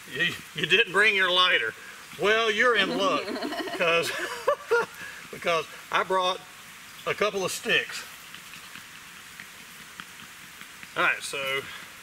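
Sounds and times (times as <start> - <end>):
outdoor background hiss: 0.0 - 12.0
faint wooden ticks: 8.2 - 11.6.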